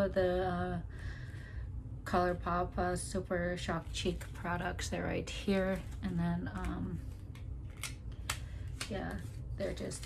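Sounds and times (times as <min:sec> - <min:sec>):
low steady hum: 0:00.0 - 0:10.0
clicks of makeup packaging: 0:06.5 - 0:09.1.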